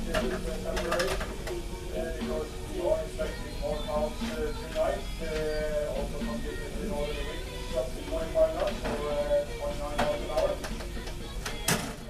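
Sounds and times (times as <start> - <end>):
indistinct voices: 0.0 - 11.9.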